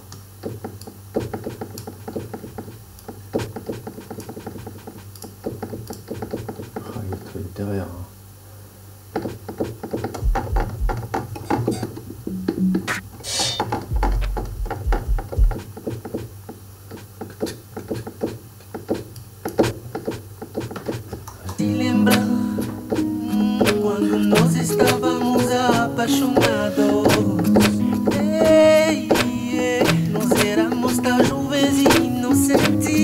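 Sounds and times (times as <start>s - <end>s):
deep bass thumps: 10.2s - 11.2s, 13.8s - 15.7s
electronic drum hits: 10.2s - 15.7s.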